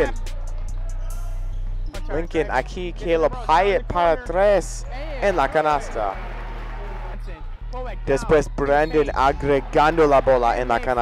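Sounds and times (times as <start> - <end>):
man talking: 2.1 - 6.2, 7.8 - 11.0.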